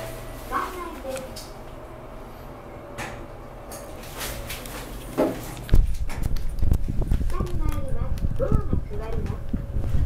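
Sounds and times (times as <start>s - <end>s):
person talking: 7.3s - 9.6s.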